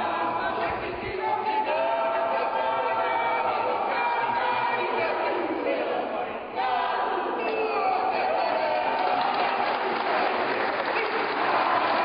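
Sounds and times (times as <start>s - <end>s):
audience clapping: 8.6s - 12.0s.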